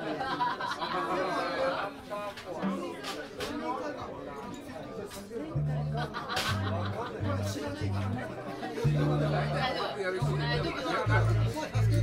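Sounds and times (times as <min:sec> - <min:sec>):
crowd talking and chatter: 0:00.0 - 0:12.0.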